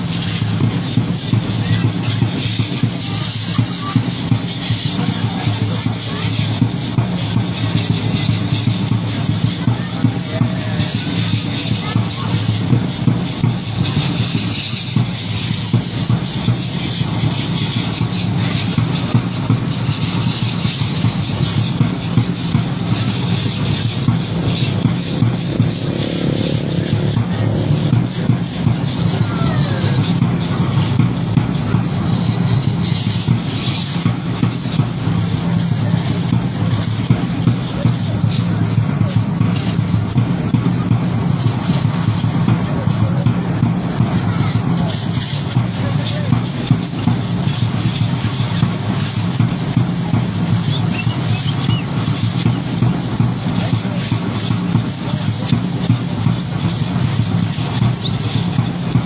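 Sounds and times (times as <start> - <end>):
drum steady beat: 0.0 - 59.0.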